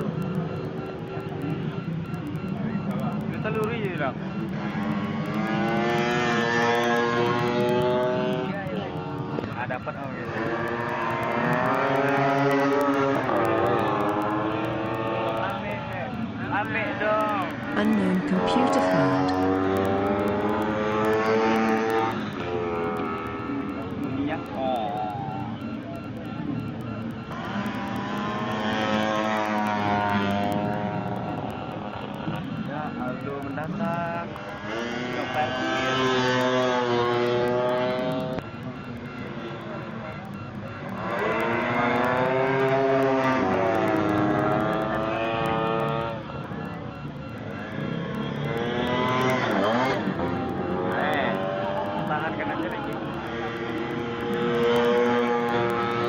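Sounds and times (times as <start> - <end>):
scooter engine passing at high revs: 4.0 - 16.0, 19.2 - 24.8, 27.3 - 33.4, 34.1 - 38.4, 40.8 - 56.0.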